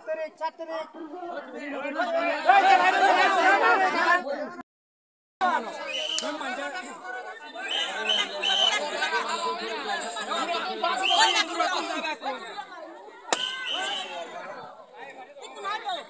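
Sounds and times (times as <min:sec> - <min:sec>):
crowd chattering: 0:00.0 - 0:04.6, 0:05.4 - 0:16.0
balloon bursting: 0:13.3 - 0:14.1.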